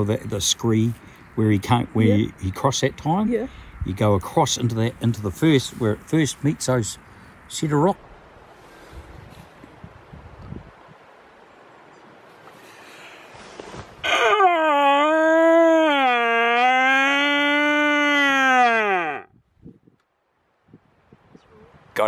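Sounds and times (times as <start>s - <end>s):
red deer stag roaring: 14.0s - 19.3s.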